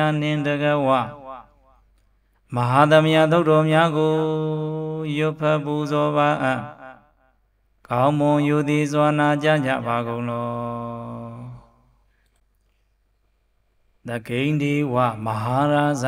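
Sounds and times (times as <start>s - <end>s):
man chanting in held notes: 0.0s - 1.8s, 2.5s - 7.1s, 7.9s - 12.0s, 14.0s - 16.0s.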